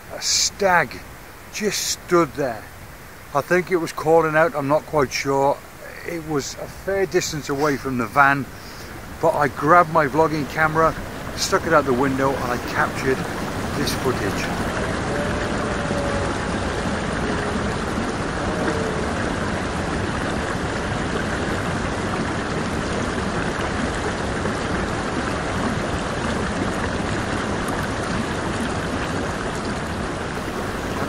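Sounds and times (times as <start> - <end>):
river water rushing: 0.0 - 31.0.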